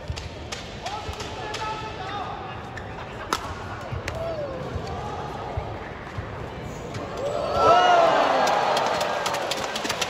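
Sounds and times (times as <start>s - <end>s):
rackets striking shuttlecock: 0.0s - 1.8s
crowd noise in large hall: 0.0s - 10.0s.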